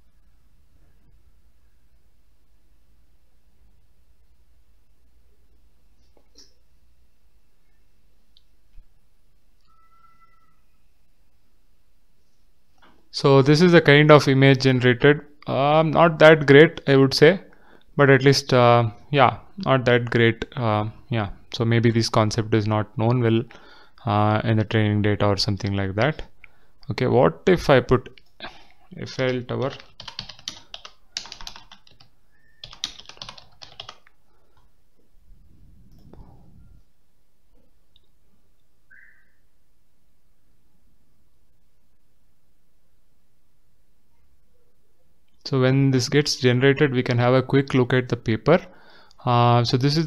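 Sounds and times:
typing on computer keyboard: 29.2s - 34.2s
low hum: 34.8s - 44.7s.

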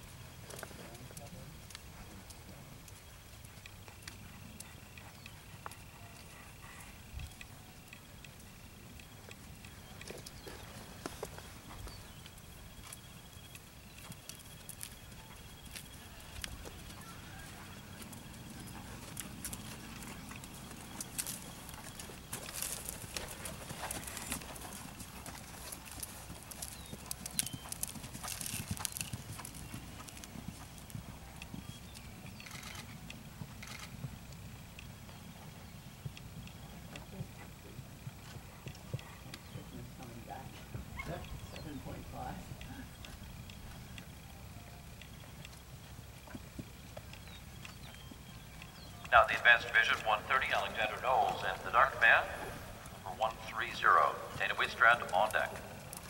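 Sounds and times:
horse hoofbeats on sand: 9.6s - 32.4s.

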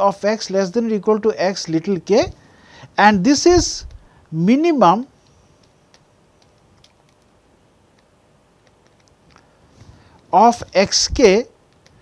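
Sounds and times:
stylus tapping on screen: 5.6s - 9.5s.

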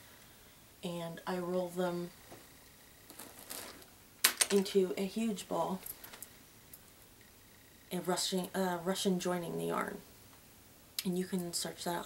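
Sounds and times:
rustling of bag and yarn: 3.0s - 3.9s.

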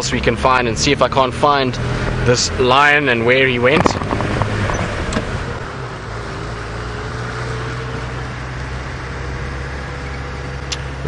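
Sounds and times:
vehicle engine drone: 0.0s - 11.0s
wind noise: 3.5s - 5.6s.

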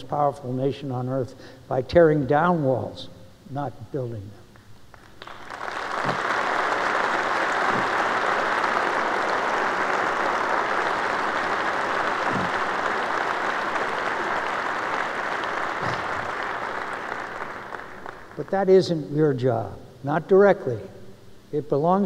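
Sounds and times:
audience applauding: 4.9s - 18.5s.

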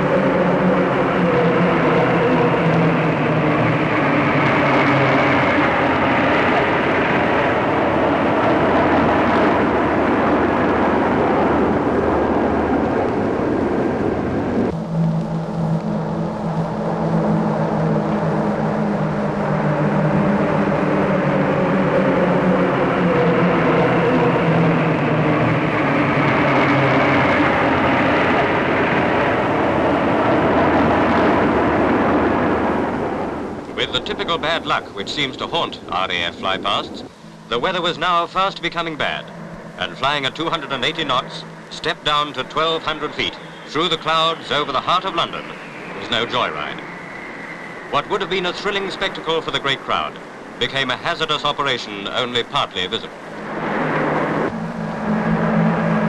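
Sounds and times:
jet aircraft flying over: 0.0s - 56.0s.

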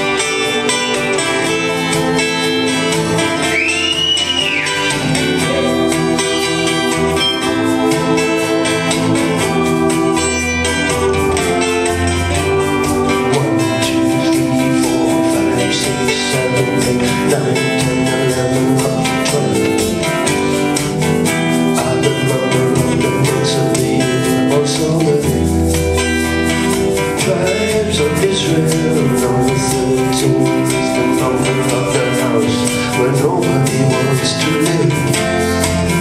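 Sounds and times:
acoustic guitar: 0.0s - 36.0s
keyboards: 0.0s - 36.0s.

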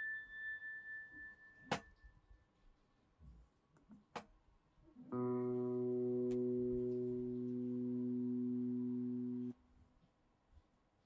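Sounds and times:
sustained pedal steel guitar note: 5.1s - 9.5s.

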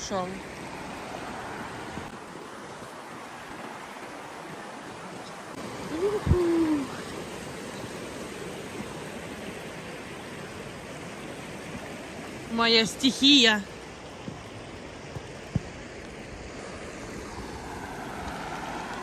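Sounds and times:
river flowing over rocks: 0.0s - 19.0s.

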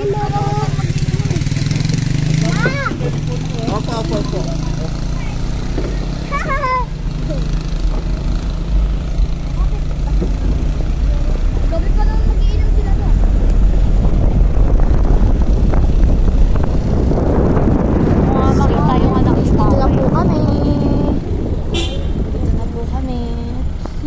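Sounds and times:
car engine and road rumble: 0.0s - 24.0s.

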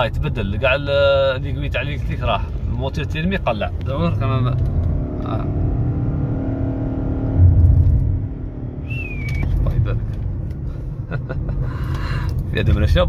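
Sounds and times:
car engine drone: 0.0s - 13.0s
road rumble: 0.0s - 13.0s.

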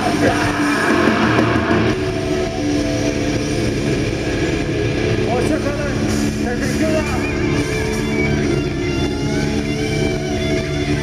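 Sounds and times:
distorted guitar notes: 0.0s - 11.0s
heavy metal band playing live: 0.0s - 11.0s.

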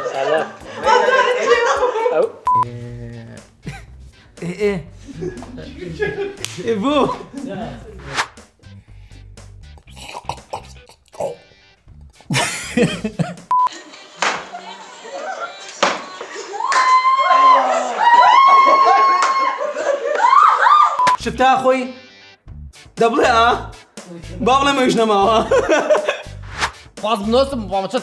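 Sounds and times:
people laughing and talking: 0.0s - 2.4s, 3.6s - 8.1s, 12.3s - 21.0s, 24.1s - 26.4s.

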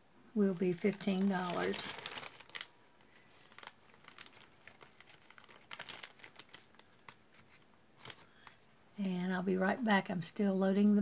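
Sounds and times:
plastic bag crinkling: 0.4s - 8.6s.

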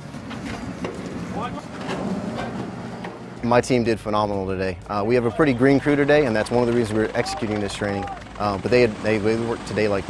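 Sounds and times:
motorboat engine running: 5.8s - 10.0s.

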